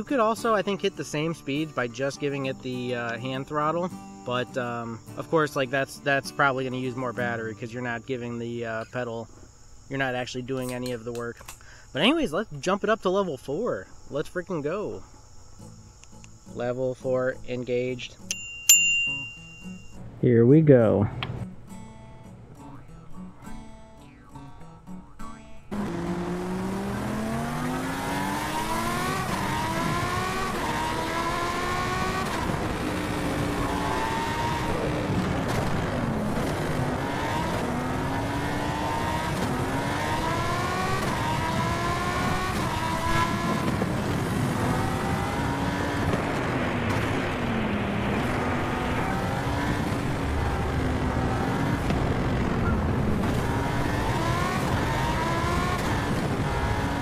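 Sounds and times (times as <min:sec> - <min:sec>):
wind rushing: 0:42.6 - 0:56.7.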